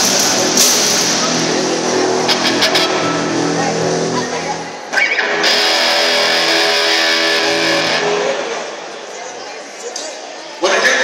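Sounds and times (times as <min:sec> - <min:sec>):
cymbal hits: 0:00.0 - 0:04.2
distorted electric guitar chord: 0:00.0 - 0:08.7.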